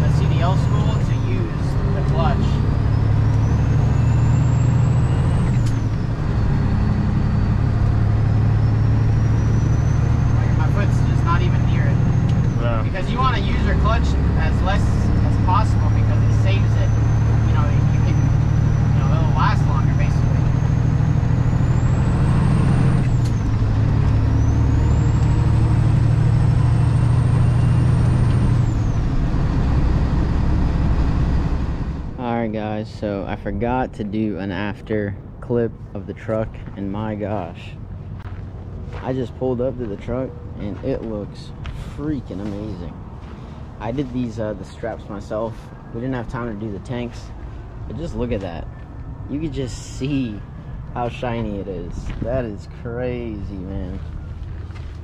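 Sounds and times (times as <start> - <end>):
high engine whine: 0.0 - 34.8
truck diesel engine accelerating: 0.0 - 55.0.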